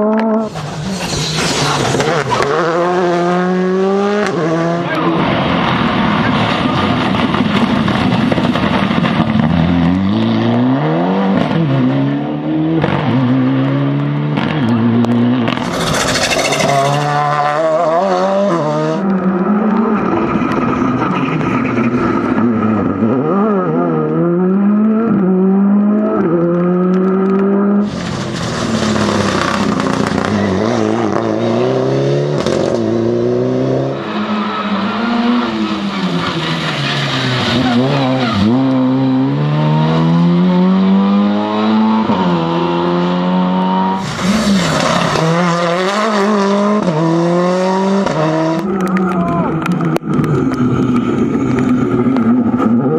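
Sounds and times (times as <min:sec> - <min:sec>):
rally car engines revving: 0:00.0 - 0:52.9.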